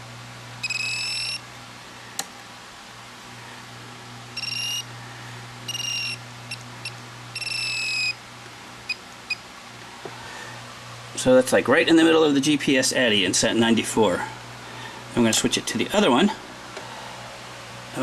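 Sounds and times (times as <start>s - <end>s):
radio transmitter beeps: 4.4s - 4.9s, 5.7s - 8.2s
short blips: 4.4s - 4.9s, 5.7s - 8.2s.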